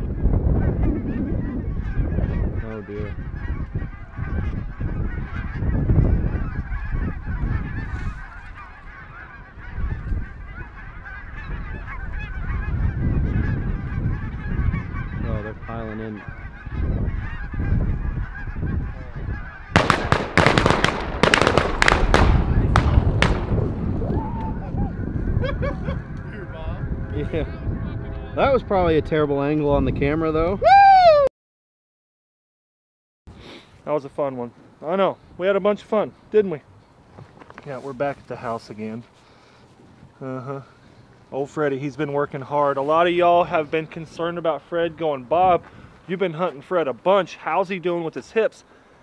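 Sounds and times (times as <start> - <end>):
geese honking: 0.0 - 29.8, 37.7 - 48.8
shotgun shots: 19.8 - 23.8
low rumble: 21.0 - 30.4.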